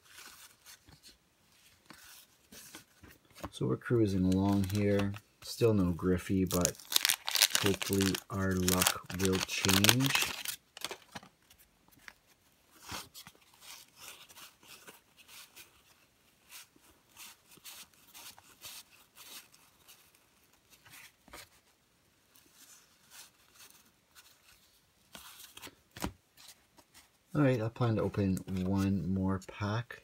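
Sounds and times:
cards rustling and clicking: 0.0s - 15.7s, 22.4s - 27.1s.

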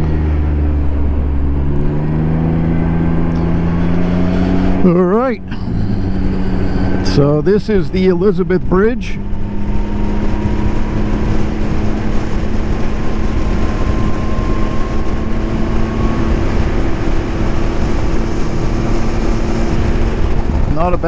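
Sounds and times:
motorcycle engine running: 0.0s - 21.0s
wind and road noise: 0.0s - 21.0s.

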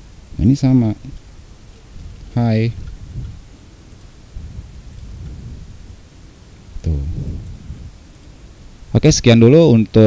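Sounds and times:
low uneven rumble: 2.0s - 9.0s.

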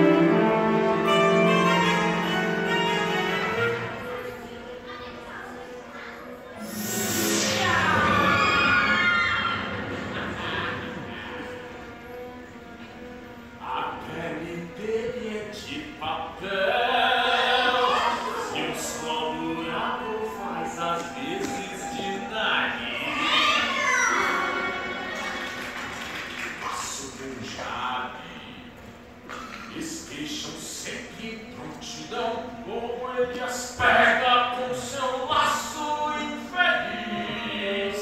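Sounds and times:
orchestra holding sustained notes: 0.0s - 4.8s, 6.4s - 15.3s, 17.4s - 25.8s.

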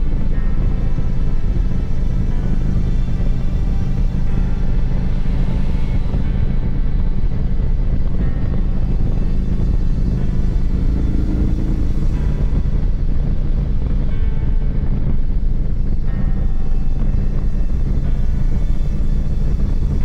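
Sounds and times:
motorcycle engine cruising: 0.0s - 20.0s
road noise: 0.0s - 20.0s.

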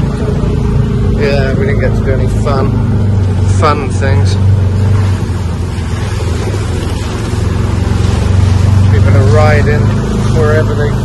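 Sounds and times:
buggy engine running: 0.0s - 11.0s
wind and road noise: 0.0s - 11.0s.

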